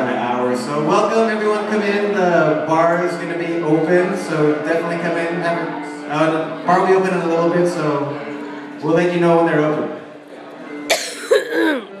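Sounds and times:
person coughing: 0:10.9 - 0:12.0.

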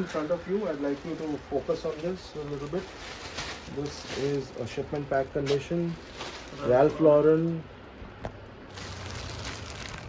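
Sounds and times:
plastic bag crinkling: 0:08.7 - 0:10.0.

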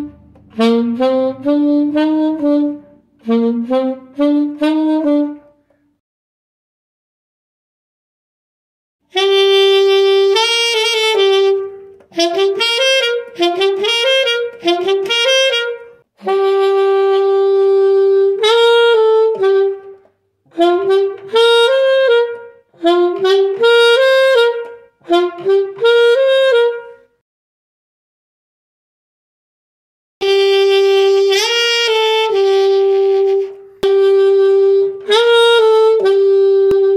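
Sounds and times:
solo alto saxophone melody: 0:00.0 - 0:06.0, 0:09.1 - 0:27.2, 0:30.2 - 0:36.9.

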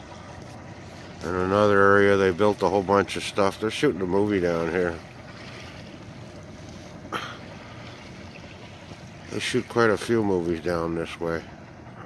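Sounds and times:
low waterside background noise: 0:00.0 - 0:12.0.

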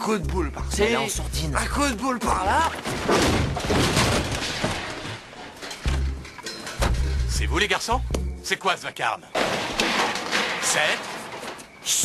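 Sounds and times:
crash with clattering: 0:02.8 - 0:07.2, 0:09.3 - 0:11.8.

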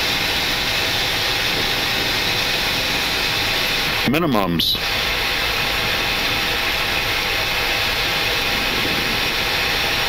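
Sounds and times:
aircraft engine sound: 0:00.0 - 0:10.0.

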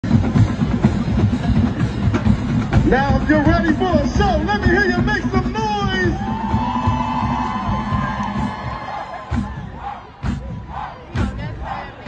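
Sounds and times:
bass drums beating: 0:00.0 - 0:12.0
marching band drumline: 0:00.0 - 0:12.0.

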